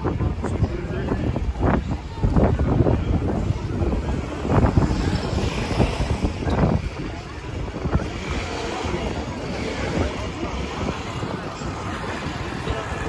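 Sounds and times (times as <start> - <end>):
voices of passers-by: 0.0 - 13.0
wind rumbling on microphone: 0.0 - 13.0.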